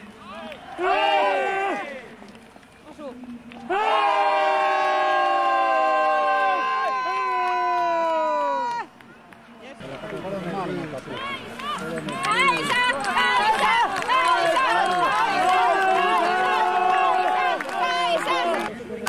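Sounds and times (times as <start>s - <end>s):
crowd cheering: 0.0s - 2.8s, 3.5s - 19.0s
overlapping shouts: 3.6s - 9.1s, 11.1s - 18.7s.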